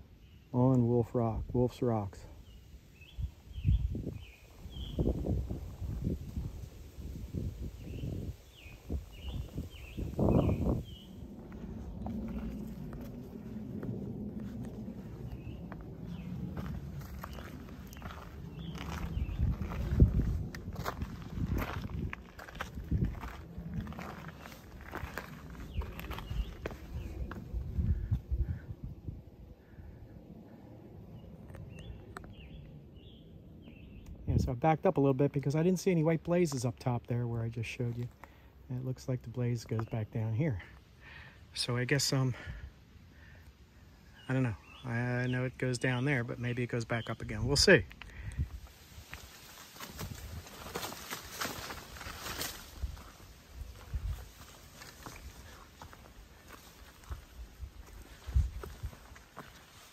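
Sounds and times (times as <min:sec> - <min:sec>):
wind rumble on microphone: 0:02.2 - 0:34.6, 0:47.3 - 0:59.9.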